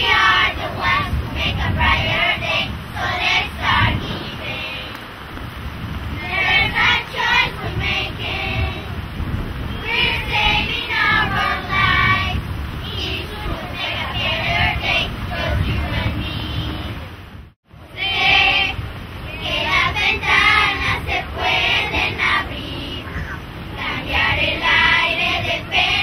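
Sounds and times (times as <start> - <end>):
children's choir singing: 0.0 - 5.1, 6.1 - 17.2, 17.8 - 26.0.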